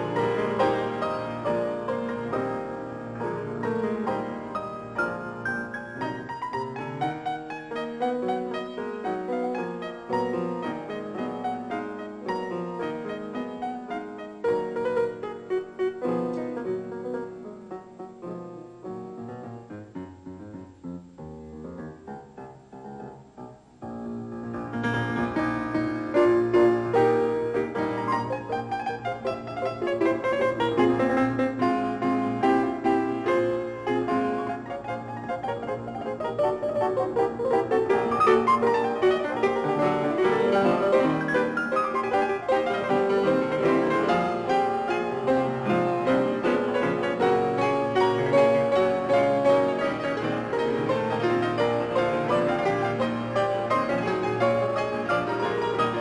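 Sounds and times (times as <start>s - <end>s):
grand piano music: 0.0s - 56.0s.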